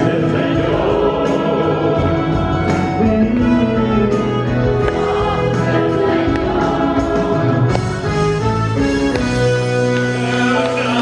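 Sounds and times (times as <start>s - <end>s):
man singing into microphone: 0.0s - 4.7s, 10.1s - 11.0s
accordion: 0.0s - 11.0s.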